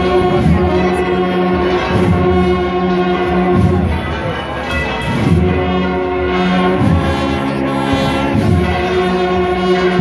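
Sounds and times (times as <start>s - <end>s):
bugle band playing held chords: 0.0s - 10.0s.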